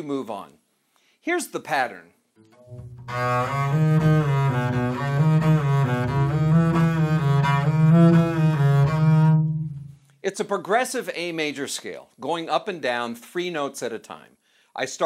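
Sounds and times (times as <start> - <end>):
bowed double bass scale: 2.6 - 10.0.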